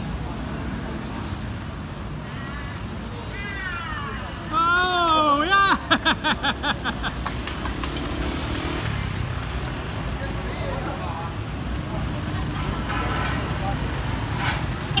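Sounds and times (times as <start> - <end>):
scooters and cars passing: 0.0 - 15.0.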